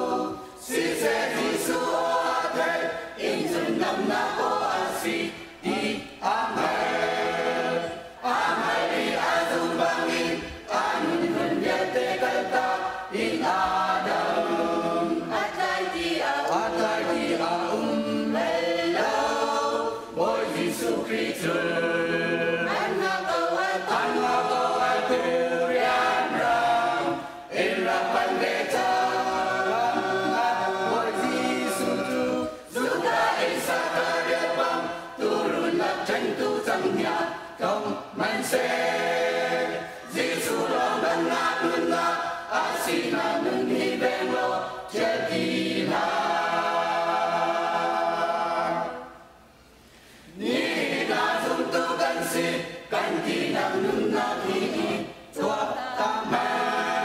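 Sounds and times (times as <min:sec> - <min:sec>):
mixed choir singing unaccompanied: 0:00.0 - 0:49.4, 0:50.3 - 0:57.0.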